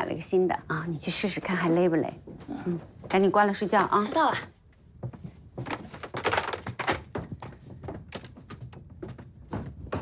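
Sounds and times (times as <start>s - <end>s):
plastic knocks and clatter: 5.1s - 10.0s.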